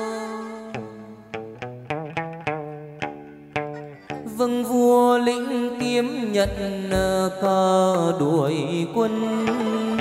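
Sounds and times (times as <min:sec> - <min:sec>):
instrumental accompaniment: 0:00.0 - 0:04.8, 0:05.5 - 0:08.4
low beats: 0:06.0 - 0:07.7
person singing wavering notes: 0:08.9 - 0:10.0.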